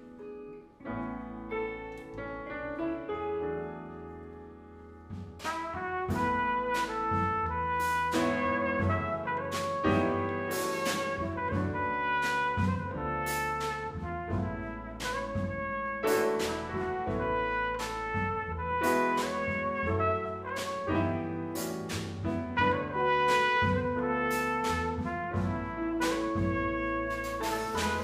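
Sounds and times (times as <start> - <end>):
soft piano: 0.0 - 28.0
upright bass: 4.9 - 28.0
trumpet melody: 5.4 - 28.0
drums with cymbal strokes: 7.8 - 11.6, 21.6 - 22.4.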